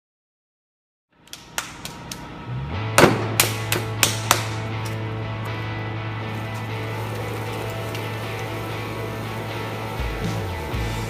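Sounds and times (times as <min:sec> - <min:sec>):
potter's wheel humming: 0:03.7 - 0:11.0.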